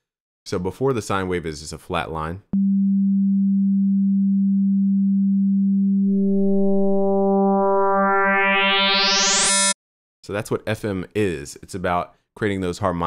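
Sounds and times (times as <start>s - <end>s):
synthesizer tone brightening: 4.1s - 9.8s.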